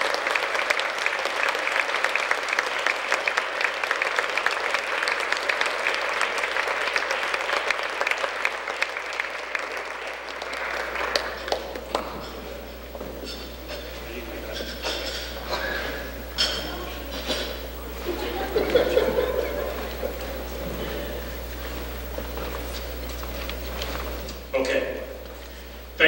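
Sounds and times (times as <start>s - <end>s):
audience applauding: 0.0s - 14.6s, 15.2s - 25.7s.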